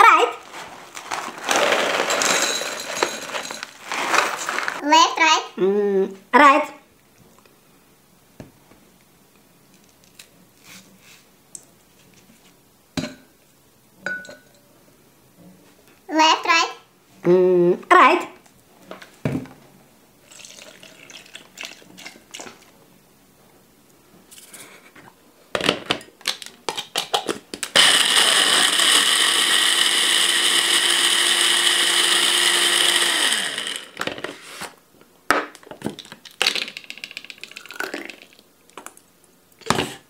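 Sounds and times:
blender motor running: 1.5s - 3.6s, 27.8s - 34.1s
fruit clinking into glass jar: 1.5s - 3.8s.

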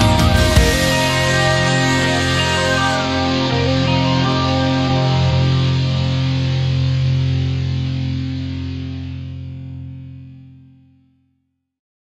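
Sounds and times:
distorted electric guitar chord: 0.0s - 11.1s.

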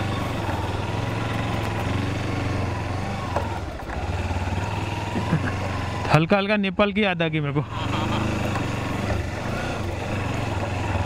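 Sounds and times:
motorcycle engine running: 0.0s - 6.5s, 7.4s - 11.0s.

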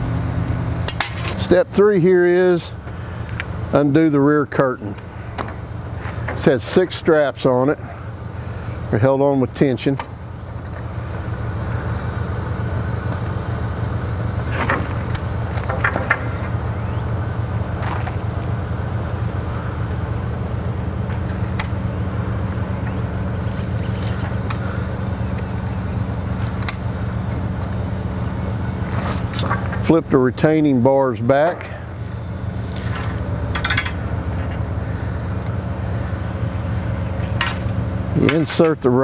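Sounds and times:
truck engine idling: 0.0s - 39.0s.

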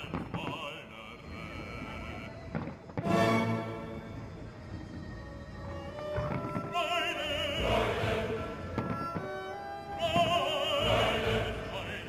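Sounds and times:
firework bangs: 0.0s - 0.9s, 2.5s - 3.6s, 5.8s - 7.8s, 8.6s - 9.4s
opera-style classical music: 0.0s - 12.0s.

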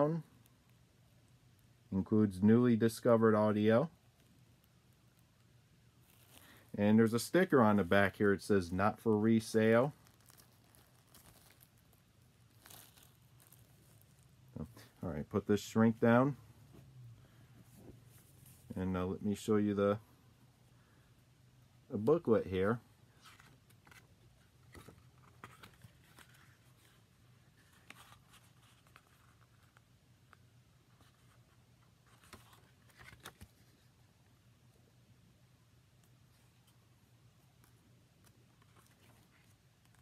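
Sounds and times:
plastic wrap crinkling: 6.0s - 6.8s, 9.4s - 14.9s
paper rustling: 9.3s - 15.0s, 23.1s - 29.8s, 30.9s - 33.9s, 37.6s - 40.0s.

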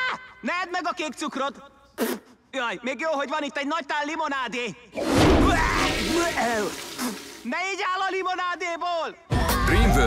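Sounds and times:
burst of noise with deep thud: 5.0s - 6.3s.

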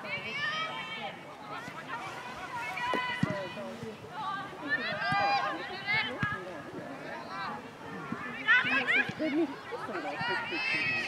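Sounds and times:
women shouting and calling out: 0.0s - 6.3s, 8.2s - 11.0s.

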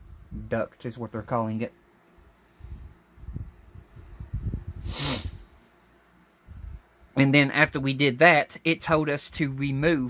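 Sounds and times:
man snorting through nose: 4.8s - 5.4s.

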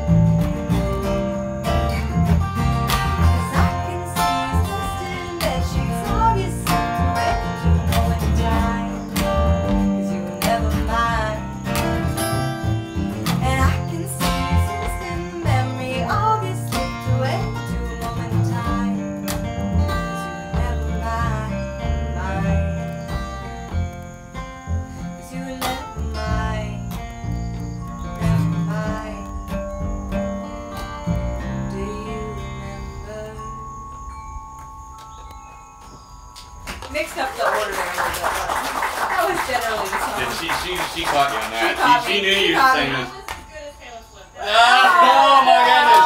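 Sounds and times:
upright bass: 0.0s - 25.0s
acoustic guitar: 0.0s - 35.2s, 36.6s - 46.0s
woman singing: 3.2s - 12.1s, 13.3s - 23.0s, 25.1s - 27.2s, 28.2s - 29.6s, 31.4s - 33.9s
audience clapping: 36.7s - 43.4s, 45.7s - 46.0s.

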